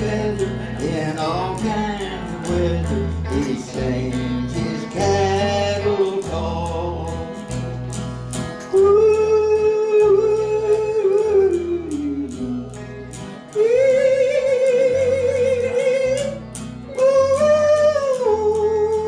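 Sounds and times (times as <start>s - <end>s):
bass line: 0.0s - 19.0s
guitar: 0.0s - 19.0s
live country band: 0.0s - 19.0s
person singing: 0.0s - 19.0s.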